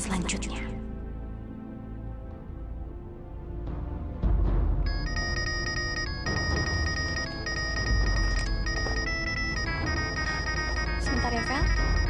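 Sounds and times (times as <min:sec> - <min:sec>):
dramatic music with deep bass: 0:00.0 - 0:12.0
phone ringtone beeping: 0:04.9 - 0:12.0.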